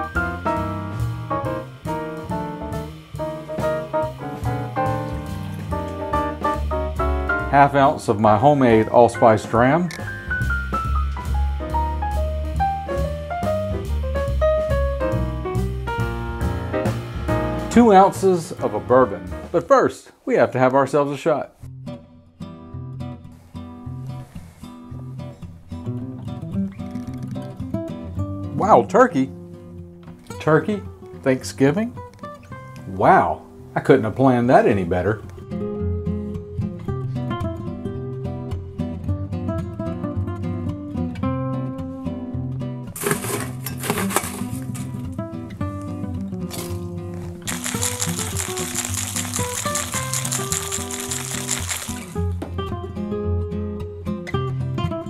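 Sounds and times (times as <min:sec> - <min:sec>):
acoustic guitar music: 0:00.0 - 0:19.6, 0:21.6 - 0:55.0
ice rattling in shaker: 0:46.5 - 0:46.8, 0:47.4 - 0:52.3
ice clinking into metal shaker: 0:47.5 - 0:52.3.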